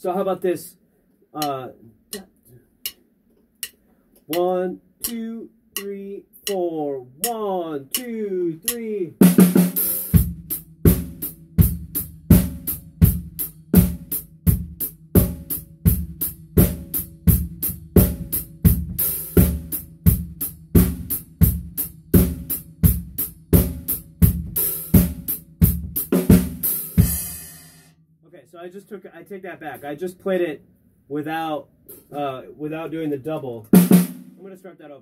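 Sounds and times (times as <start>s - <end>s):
drum kit rock groove: 1.4s - 3.0s, 4.3s - 6.6s, 7.2s - 28.0s, 33.7s - 34.6s.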